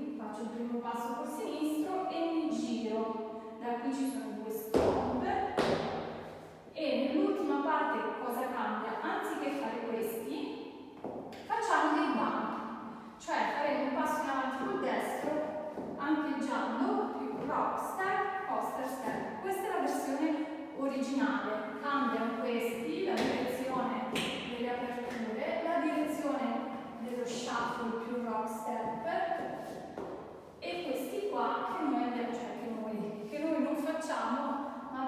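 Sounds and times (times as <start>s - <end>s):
woman talking: 0.0s - 5.8s, 6.8s - 10.5s, 11.4s - 12.6s, 13.2s - 29.6s, 30.6s - 35.0s.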